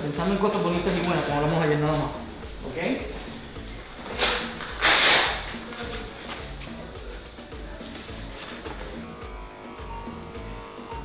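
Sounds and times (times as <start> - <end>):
hook-and-loop fastener tearing: 4.2 - 5.5.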